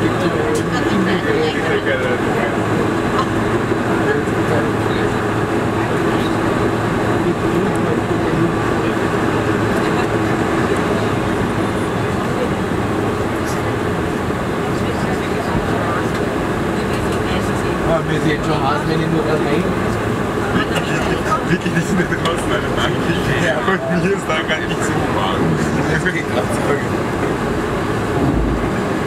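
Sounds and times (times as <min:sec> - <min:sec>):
jet engines idling: 0:00.0 - 0:29.0
passengers talking: 0:00.0 - 0:29.0
rumble of wheels: 0:00.0 - 0:29.0.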